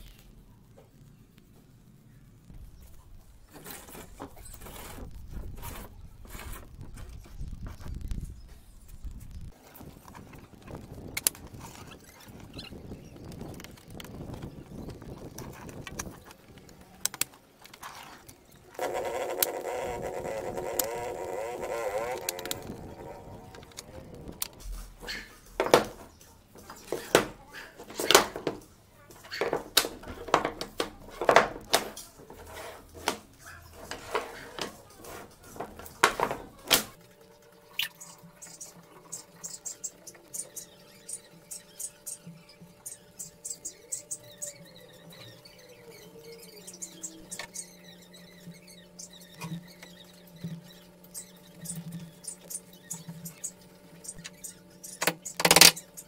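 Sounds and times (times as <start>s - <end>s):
faint low hum: 0.0s - 56.0s.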